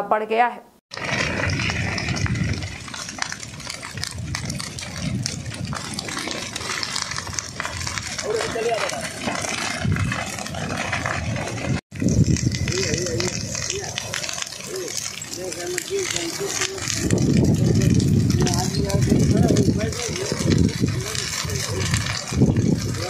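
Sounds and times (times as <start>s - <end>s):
brush fire crackling and rushing: 0.9s - 23.0s
faint voices: 12.6s - 22.2s.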